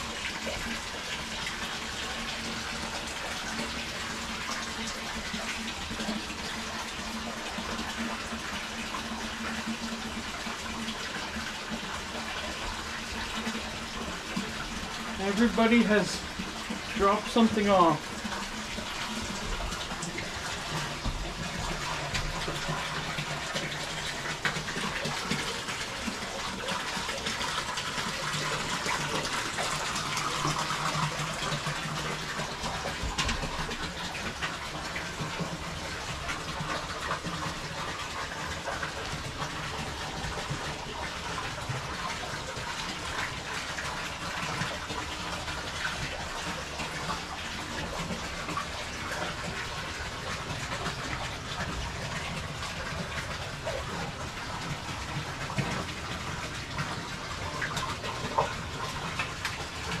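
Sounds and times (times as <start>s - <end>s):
water pouring into tub: 0.0s - 60.0s.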